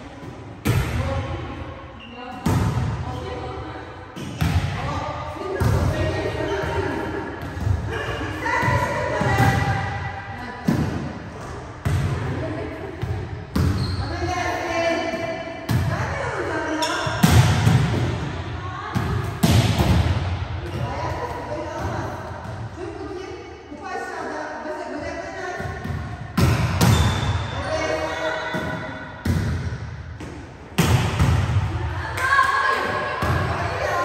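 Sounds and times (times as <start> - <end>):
volleyballs struck and bouncing: 10.6 - 13.9, 16.8 - 22.8, 25.6 - 27.6, 28.5 - 34.0.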